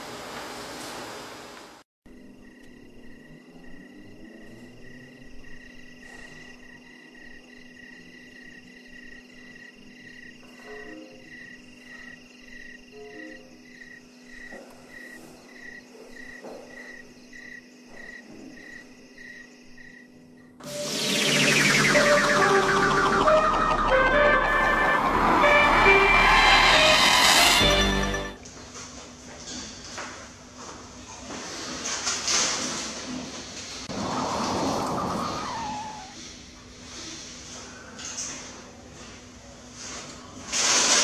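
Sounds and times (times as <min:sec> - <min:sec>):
cricket chirping: 0:02.1 - 0:20.6
low hum: 0:20.7 - 0:28.4.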